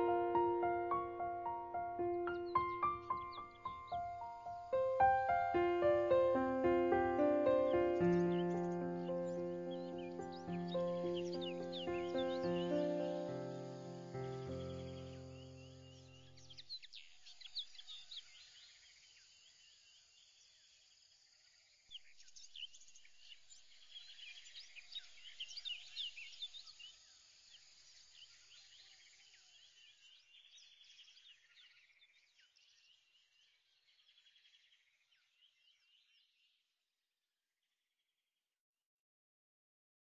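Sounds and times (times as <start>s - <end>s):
music track: 0.0s - 15.6s
small birds chirping: 0.0s - 36.6s.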